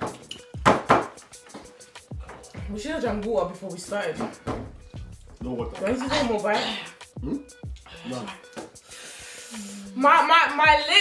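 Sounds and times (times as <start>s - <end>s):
person humming: 7.2s - 8.3s
breath hissing through lips: 7.8s - 10.0s.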